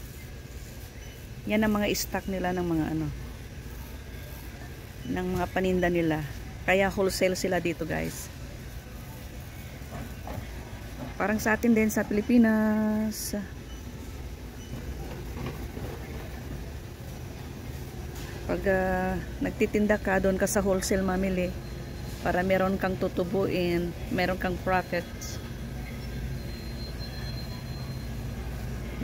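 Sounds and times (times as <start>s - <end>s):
faint high whine: 0.0s - 29.0s
warehouse low rumble and hum: 0.0s - 29.0s.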